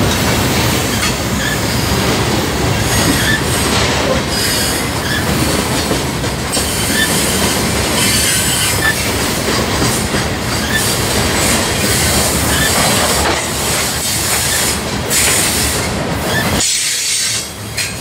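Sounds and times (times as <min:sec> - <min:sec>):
freight train wheels rumbling: 0:00.0 - 0:18.0.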